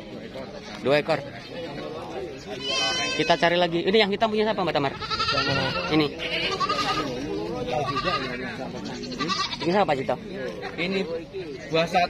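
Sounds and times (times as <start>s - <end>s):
men talking: 0.0s - 12.0s
goats bleating: 2.5s - 3.8s, 4.8s - 9.8s.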